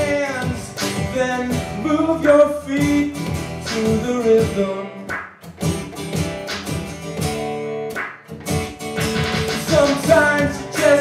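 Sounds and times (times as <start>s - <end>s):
person singing: 0.0s - 5.1s, 9.2s - 11.0s
acoustic guitar strumming: 0.0s - 11.0s.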